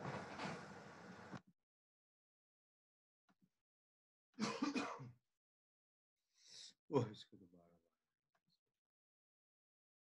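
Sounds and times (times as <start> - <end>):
man clearing his throat: 4.4 - 5.1.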